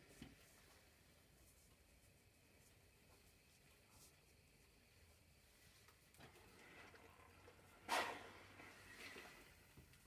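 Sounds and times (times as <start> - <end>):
iron sliding on fabric: 7.8 - 9.7.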